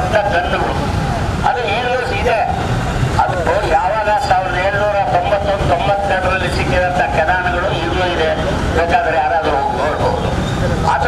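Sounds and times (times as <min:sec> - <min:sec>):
man speaking into microphone: 0:00.0 - 0:11.0.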